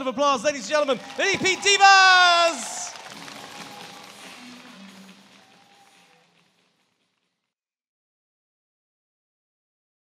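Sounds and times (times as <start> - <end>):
music: 0.0 - 7.6
crowd applause: 0.5 - 7.1.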